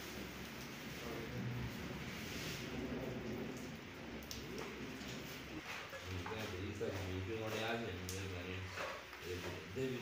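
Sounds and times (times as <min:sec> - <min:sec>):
hands mixing crumbly dough: 0:04.4 - 0:10.0.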